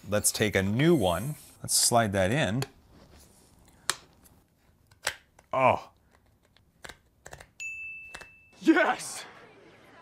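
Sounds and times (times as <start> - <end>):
high ringing ding: 7.6 - 8.6.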